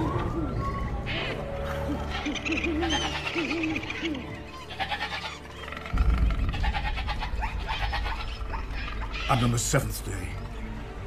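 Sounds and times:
animal calls: 0.0s - 9.7s
deep low rumble: 5.9s - 9.1s.

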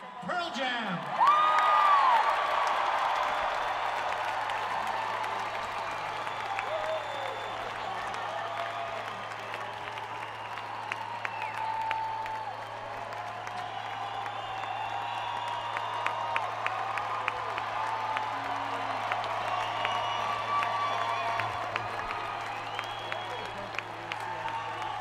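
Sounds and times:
crowd applauding and cheering: 0.0s - 25.0s
whistles from crowd: 5.1s - 17.4s, 18.9s - 25.0s.

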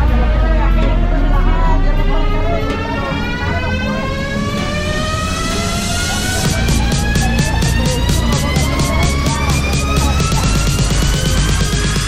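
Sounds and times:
boat engine running: 5.2s - 12.0s.

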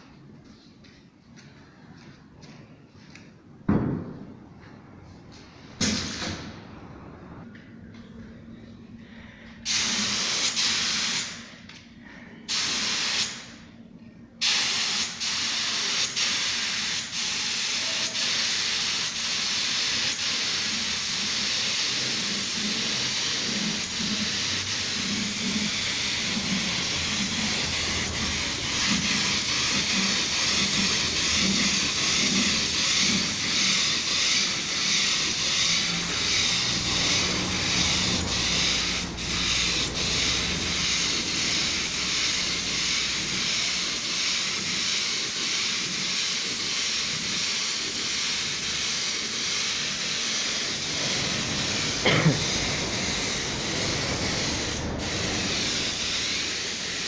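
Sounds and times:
paint spray gun hissing: 9.7s - 11.4s, 12.5s - 13.5s, 14.4s - 57.0s.

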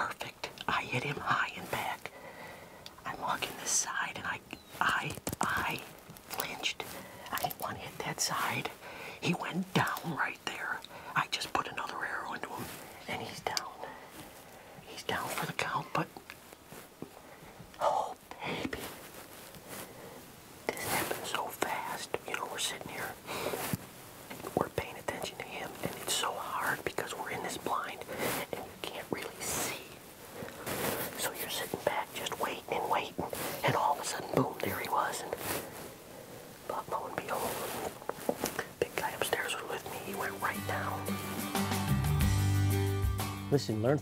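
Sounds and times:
man whispering: 0.0s - 2.1s, 3.0s - 14.2s, 14.8s - 16.3s, 17.7s - 19.0s, 20.7s - 23.7s, 24.3s - 35.8s, 36.4s - 41.1s.

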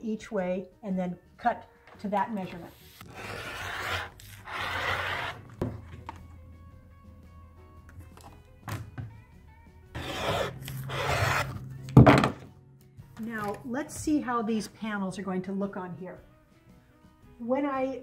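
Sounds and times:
light background music: 0.0s - 18.0s
rotary cutter scraping through fabric: 2.6s - 5.5s, 10.0s - 11.6s.

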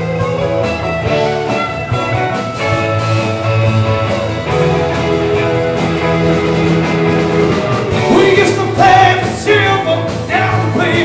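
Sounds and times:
rock band playing instrumental: 0.0s - 11.0s.

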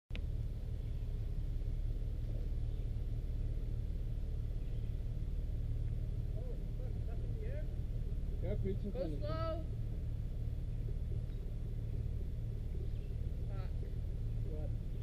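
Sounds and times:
engine running at low revs: 0.1s - 15.0s
faint voices: 2.0s - 15.0s.

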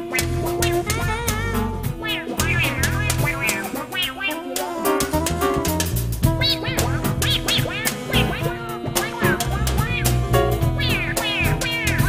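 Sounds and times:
jazz band playing: 0.0s - 12.0s
high swooping squeals: 1.8s - 5.6s.

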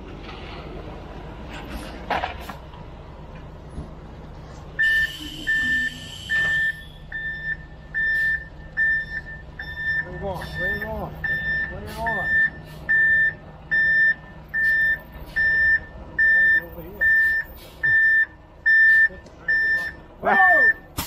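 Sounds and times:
diesel engine running: 0.0s - 21.0s
reverse alarm beeping: 4.8s - 20.9s.

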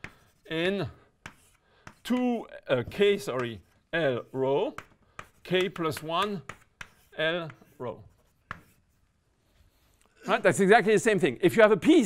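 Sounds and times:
chalk tapping a blackboard: 0.0s - 0.6s, 1.2s - 9.0s
chalk writing strokes: 0.0s - 10.1s.

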